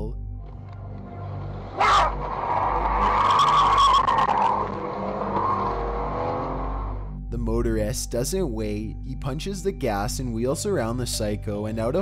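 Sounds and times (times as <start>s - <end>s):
car accelerating hard: 1.1s - 7.1s
tyres squealing: 1.7s - 6.8s.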